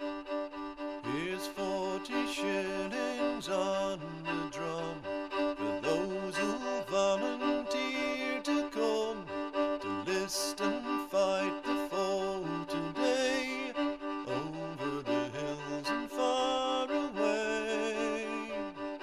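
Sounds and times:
cello line: 0:00.0 - 0:19.0
violin melody: 0:00.0 - 0:19.0.

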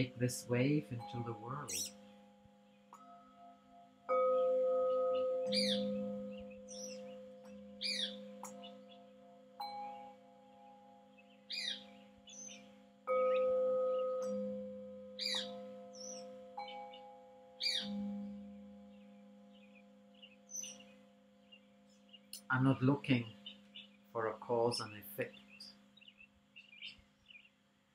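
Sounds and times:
metal singing bowls ringing: 0:00.0 - 0:22.3
bird chirping: 0:00.0 - 0:27.7.

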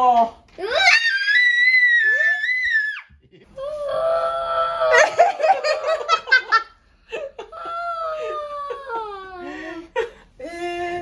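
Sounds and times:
child screaming: 0:00.6 - 0:03.1
children laughing: 0:04.6 - 0:10.0.

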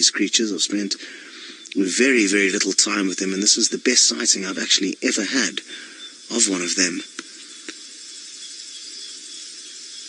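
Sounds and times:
insects chirring: 0:00.0 - 0:10.0
thin steady high tone: 0:00.0 - 0:10.0.

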